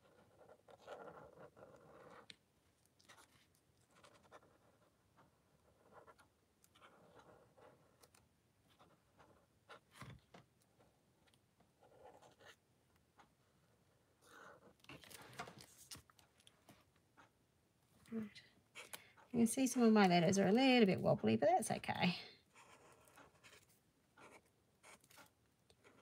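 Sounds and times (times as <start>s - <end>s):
marker scratching on paper: 0.0s - 2.3s, 3.1s - 10.1s, 11.8s - 12.6s, 22.5s - 26.0s.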